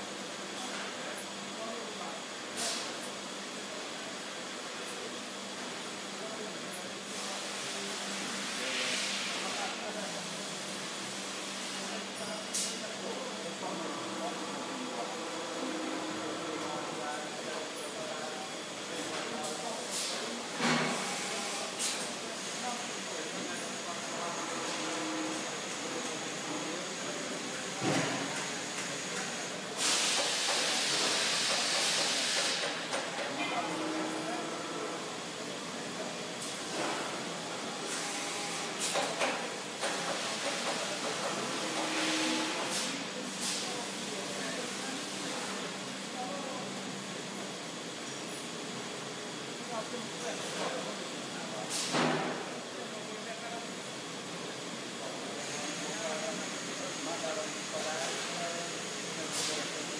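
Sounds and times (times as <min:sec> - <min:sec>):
steady machine hum: 0:09.5 - 0:19.0.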